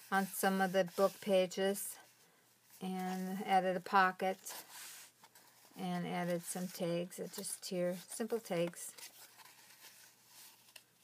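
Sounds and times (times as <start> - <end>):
paper rustling: 2.7 - 11.0.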